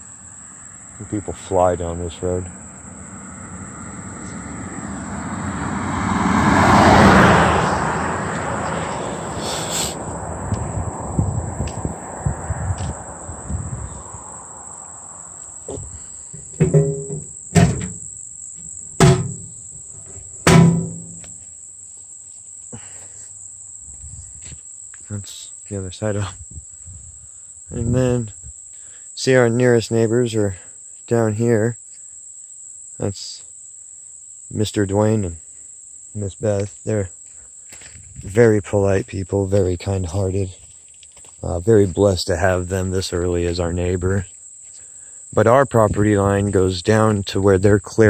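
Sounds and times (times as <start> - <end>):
high insect drone: 0.0 - 48.0
vehicle passing at speed: 2.4 - 16.6
metallic mailbox clanks: 16.4 - 18.0, 19.0 - 19.5, 20.5 - 21.2.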